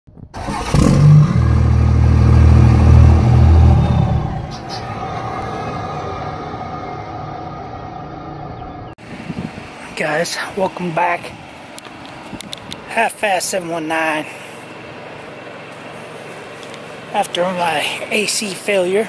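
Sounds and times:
deep engine-like rumble: 0.4s - 9.0s
sudden burst: 0.9s - 9.0s.

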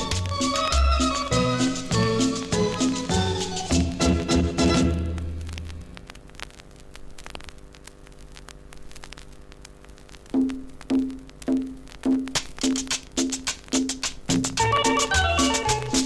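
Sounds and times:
dance music from vinyl record: 0.0s - 16.0s
record surface crackle: 0.0s - 16.0s
steady hum: 0.0s - 16.0s.

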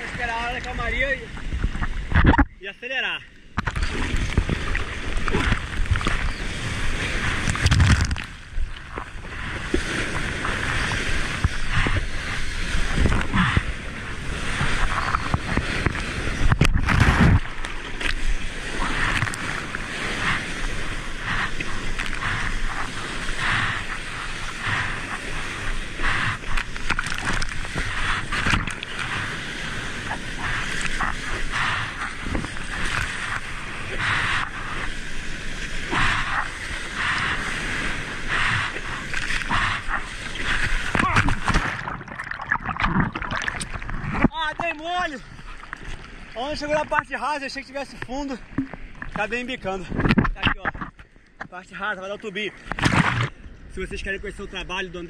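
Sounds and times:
water sloshing and splashing: 3.4s - 51.6s, 52.5s - 53.7s
breaking surf: 3.6s - 48.0s.

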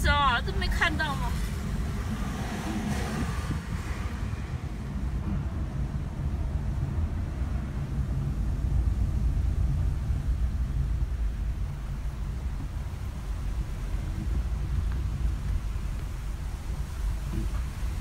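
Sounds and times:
car engine and tyres rumble: 0.0s - 18.0s.

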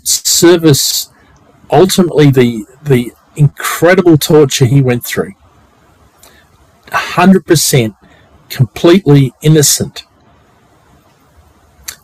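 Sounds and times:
person speaking: 0.0s - 5.4s, 6.2s - 10.1s
low steady background hiss: 0.0s - 12.0s.

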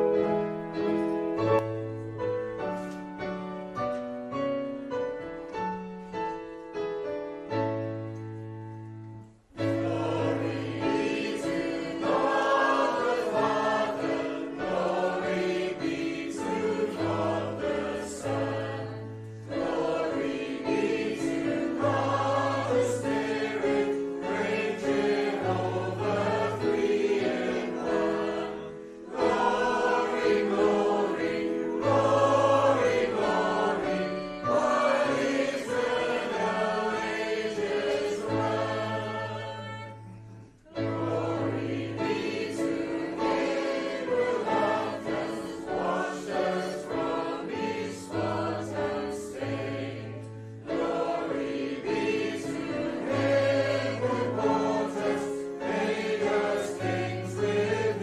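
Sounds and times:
congregation singing a hymn: 0.0s - 58.0s.

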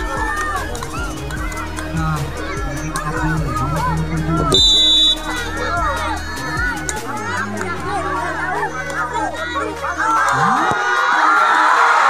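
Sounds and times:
crowd chattering and shouting: 0.0s - 12.0s
referee whistle blast: 4.5s - 5.5s.

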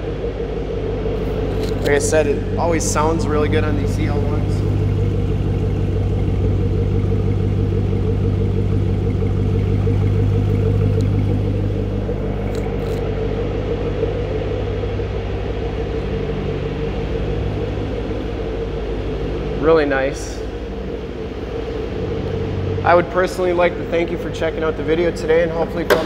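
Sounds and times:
car engine idling: 0.0s - 26.0s.

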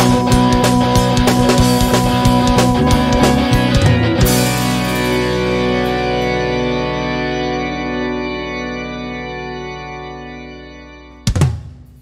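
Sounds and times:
organ-like keyboard chord: 0.0s - 11.8s.

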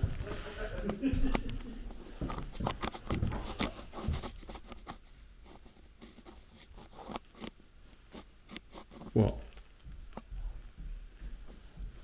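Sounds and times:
rubbing and rustling handling noise: 0.0s - 10.3s
light clicks and knocks: 0.9s - 5.0s.

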